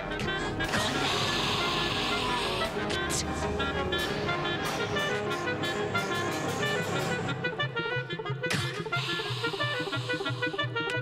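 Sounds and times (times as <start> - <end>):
chamber ensemble music: 0.0 - 11.0.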